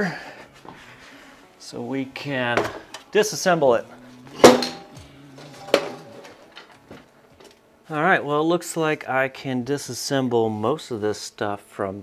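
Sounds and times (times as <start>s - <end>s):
ringing metallic clanks: 4.4s - 6.3s.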